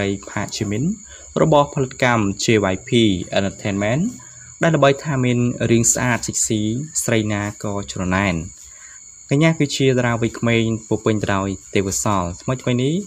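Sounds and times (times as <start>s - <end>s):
faint high whine: 0.0s - 13.0s
person narrating: 0.0s - 13.0s.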